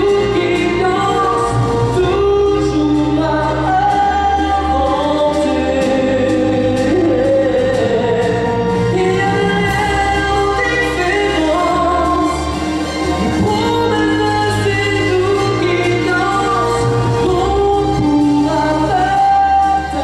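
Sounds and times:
amplified instrumental accompaniment: 0.0s - 20.0s
man singing into a microphone: 0.0s - 20.0s.

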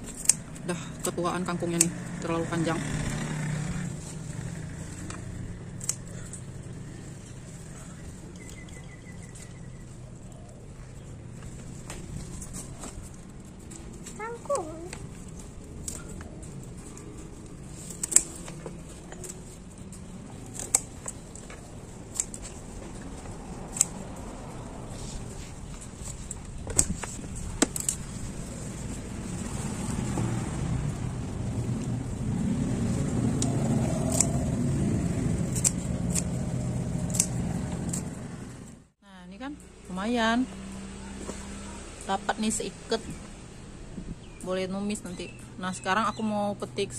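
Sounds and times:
scissors snipping stems: 0.0s - 9.6s, 11.8s - 30.4s, 32.6s - 38.3s
passing road vehicle rumble: 0.0s - 46.9s.

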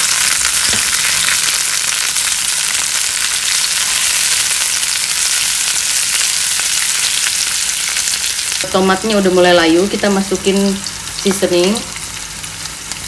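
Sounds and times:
vegetables sizzling in hot oil: 0.0s - 13.0s.

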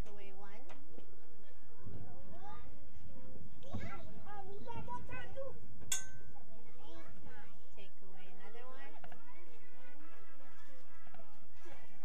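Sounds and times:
young child talking: 1.6s - 2.8s, 3.6s - 5.6s, 6.4s - 12.0s
sharp metallic clink: 5.9s - 6.4s.

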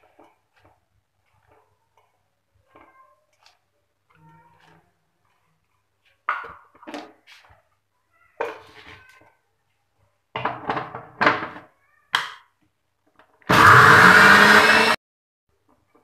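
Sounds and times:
mixer grinder motor: 13.5s - 15.0s.

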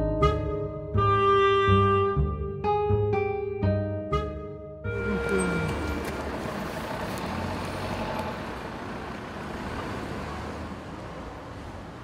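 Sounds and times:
music: 0.0s - 6.3s
road traffic rumble: 4.9s - 12.0s.

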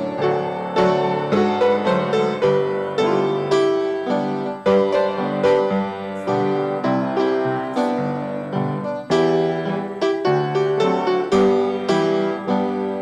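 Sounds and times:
keyboard playing hymn chords: 0.0s - 13.0s.

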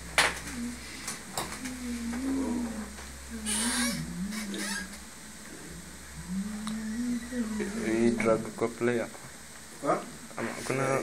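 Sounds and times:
person singing low wavering notes: 0.4s - 8.2s.

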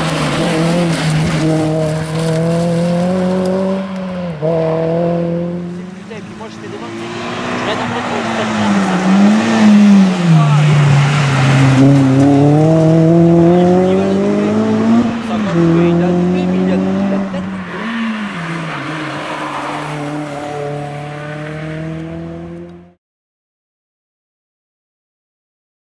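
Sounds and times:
car engine accelerating hard: 0.0s - 23.0s.

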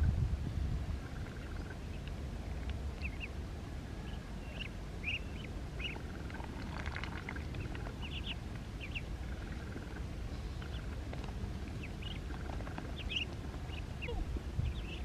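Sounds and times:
low rumble: 0.0s - 15.0s
ducklings peeping: 0.9s - 15.0s.

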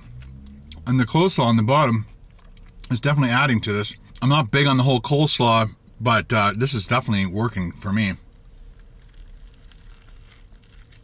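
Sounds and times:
low steady hum: 0.0s - 11.0s
crunching and chewing: 2.2s - 2.9s, 8.2s - 11.0s.

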